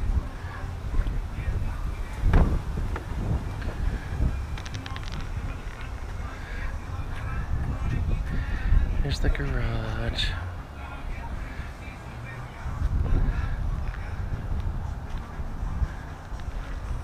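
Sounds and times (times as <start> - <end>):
wind on microphone: 0.0 - 17.0.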